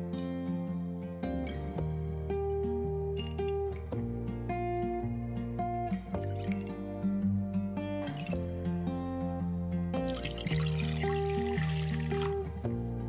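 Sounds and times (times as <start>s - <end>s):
background music: 0.0s - 13.0s
liquid pouring into metal bowl: 10.1s - 12.8s
water running into bowl: 10.1s - 12.8s.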